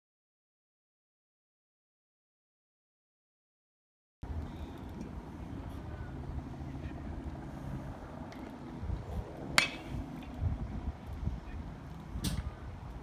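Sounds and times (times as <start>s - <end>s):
wind noise on microphone: 4.2s - 13.0s
baseball bat hitting ball: 9.6s - 10.0s.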